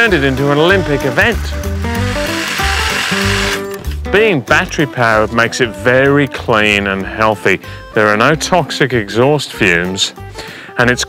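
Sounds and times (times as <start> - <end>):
hedge trimmer buzzing: 0.0 - 3.9
background music: 0.0 - 11.0.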